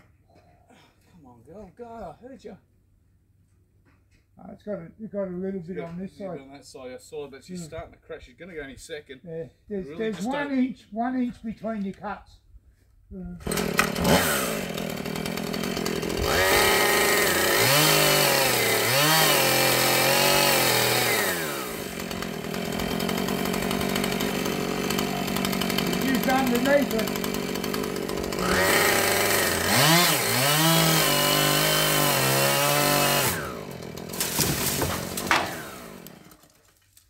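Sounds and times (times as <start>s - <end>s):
chainsaw revving and idling: 13.4s - 36.5s
sharp wood crack: 13.5s - 14.5s, 31.2s - 37.0s.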